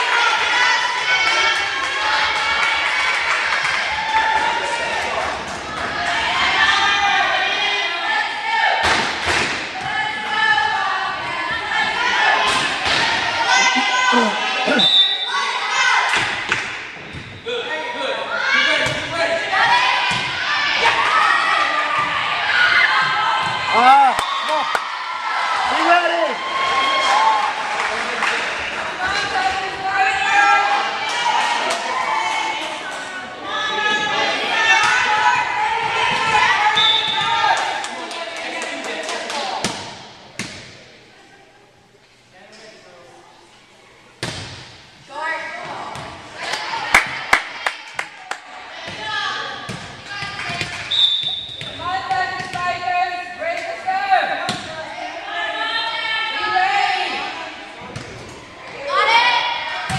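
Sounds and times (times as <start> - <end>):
volleyball thuds: 44.2 - 44.8.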